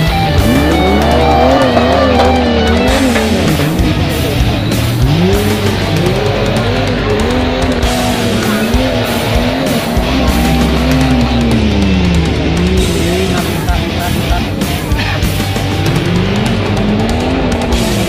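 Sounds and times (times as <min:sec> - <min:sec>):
jeep engine revving: 0:00.0 - 0:18.0
rock music with guitar: 0:00.0 - 0:18.0.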